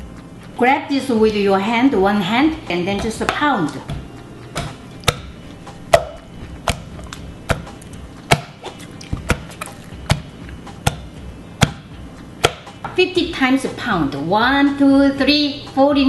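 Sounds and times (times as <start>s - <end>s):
pestle pounding rice dough: 2.7s - 13.0s.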